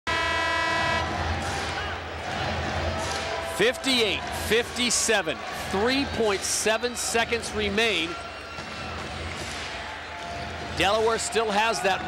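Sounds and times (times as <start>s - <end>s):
arena horn blast: 0.1s - 1.3s
crowd noise: 0.1s - 12.0s.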